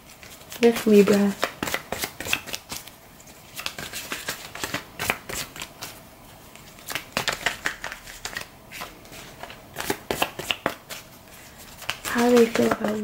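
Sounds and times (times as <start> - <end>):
cards being shuffled: 0.0 - 13.0.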